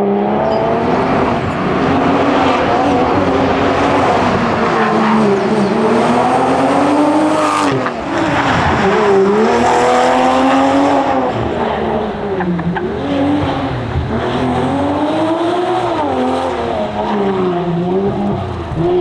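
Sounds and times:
car engine revving under acceleration: 0.0s - 19.0s.

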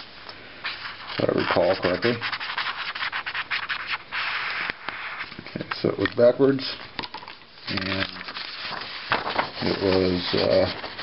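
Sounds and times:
marker scratching on paper: 0.7s - 5.3s.

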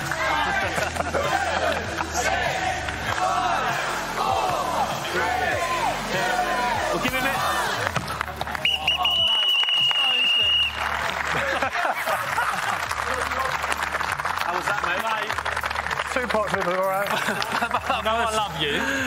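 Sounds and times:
crowd shouting: 0.0s - 8.0s
crowd clapping and cheering: 0.0s - 19.0s.

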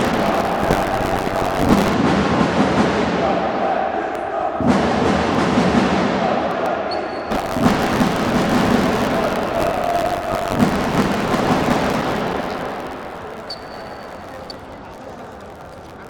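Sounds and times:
crowd voices: 0.0s - 16.0s.

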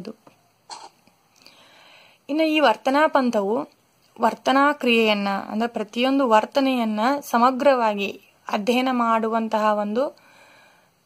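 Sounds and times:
soft in-breath: 1.4s - 2.3s, 10.2s - 11.0s.

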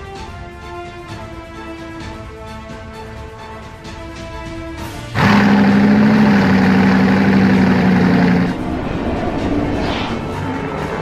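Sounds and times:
background music: 0.0s - 11.0s
loud roar with low drone: 5.2s - 11.0s.

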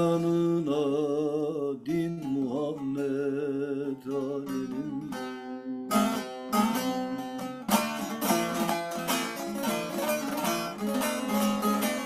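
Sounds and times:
long-necked lute plucked and strummed: 0.0s - 12.0s.

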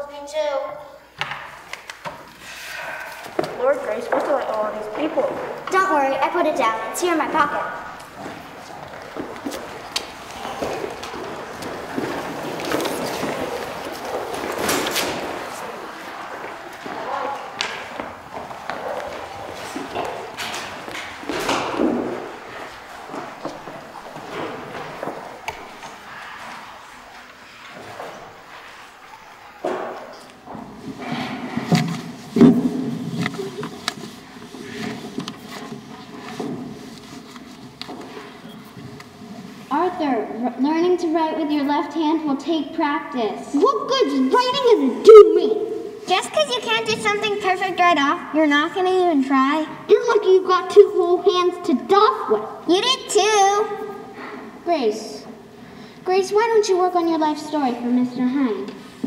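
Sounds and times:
footsteps on wooden floor: 2.0s - 39.8s
furniture knocking and thumping: 17.6s - 25.8s.

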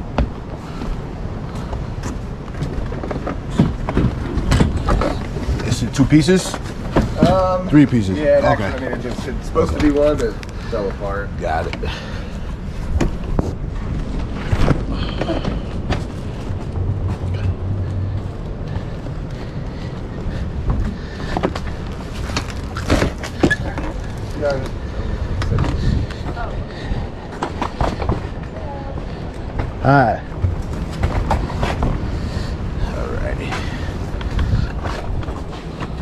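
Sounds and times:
knocks and bumps: 1.7s - 7.6s
low rumble: 6.6s - 36.0s.

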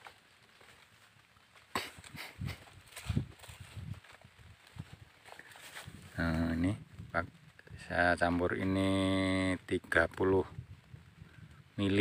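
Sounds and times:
faint leaf rustling: 0.0s - 12.0s
footsteps on dry leafy soil: 0.0s - 12.0s.

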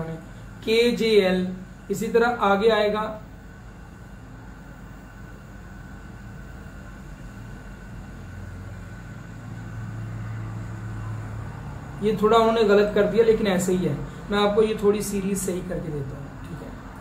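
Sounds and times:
low rumbling background noise: 0.0s - 17.0s.

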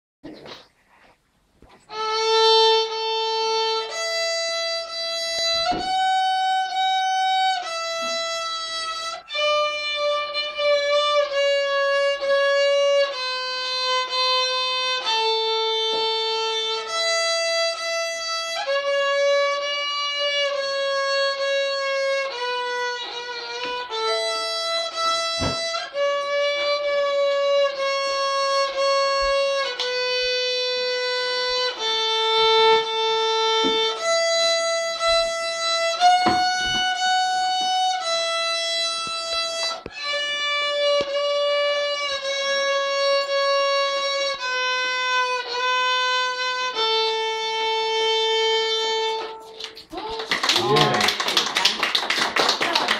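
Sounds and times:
child playing violin: 1.6s - 49.8s.

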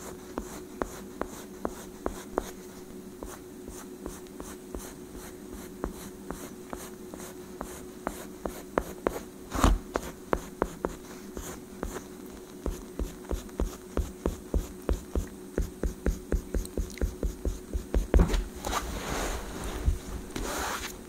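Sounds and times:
pencil scratching on paper: 0.0s - 2.6s, 3.2s - 9.3s, 10.0s - 18.2s.

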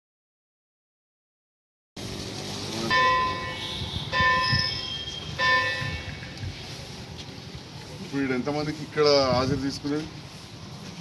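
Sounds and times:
outdoor background noise: 2.0s - 11.0s
bell ringing: 2.9s - 6.1s.

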